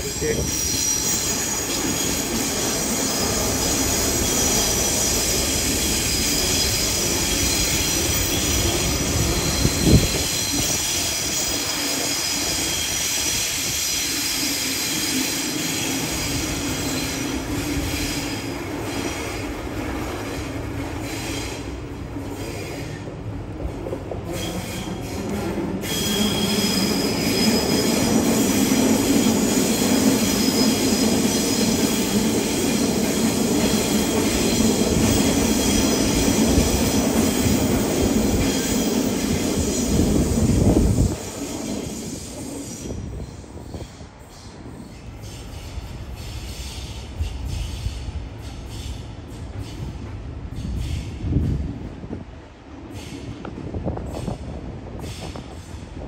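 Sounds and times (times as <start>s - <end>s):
high wheel squeal: 0.0s - 19.3s, 25.8s - 49.9s
electric trains running past: 0.0s - 56.0s.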